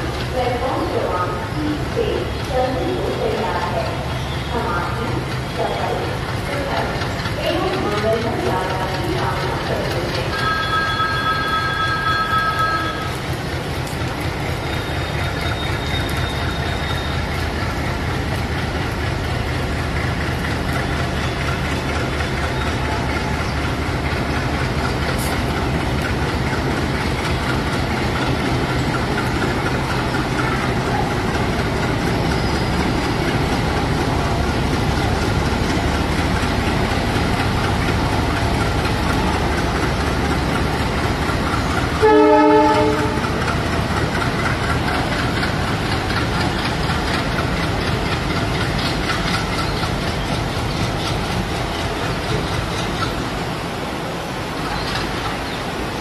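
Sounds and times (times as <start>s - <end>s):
diesel locomotive engine running: 0.0s - 56.0s
locomotive horn blast: 42.0s - 43.4s.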